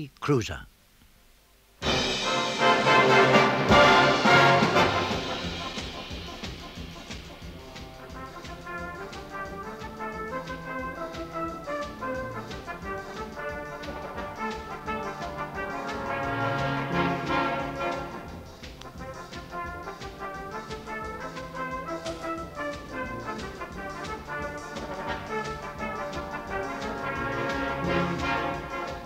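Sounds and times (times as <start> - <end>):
brass band playing: 1.8 - 29.0.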